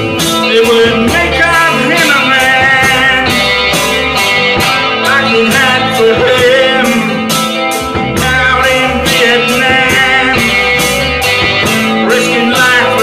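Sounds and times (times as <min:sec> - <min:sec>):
man singing: 0:00.0 - 0:13.0
rock band playing: 0:00.0 - 0:13.0.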